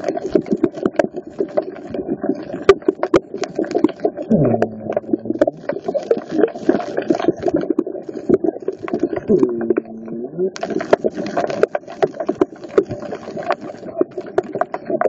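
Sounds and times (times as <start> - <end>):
underwater clicks and crackles: 0.0 - 15.0
underwater water rush: 0.0 - 15.0
low hum dropping in pitch: 4.3 - 5.6.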